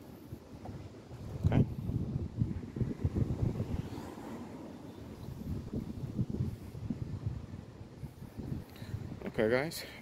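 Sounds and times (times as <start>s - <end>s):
wind buffeting microphone: 0.2s - 9.7s.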